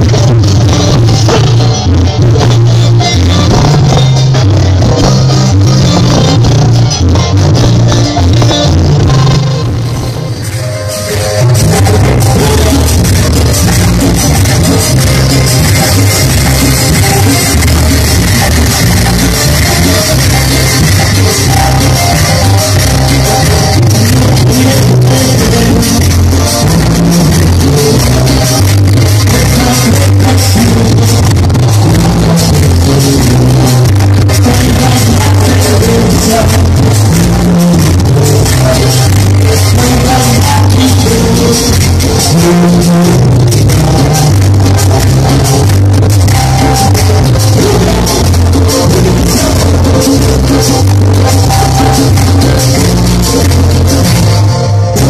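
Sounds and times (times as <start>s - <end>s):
live band playing: 0.0s - 55.0s
person singing: 0.0s - 55.0s.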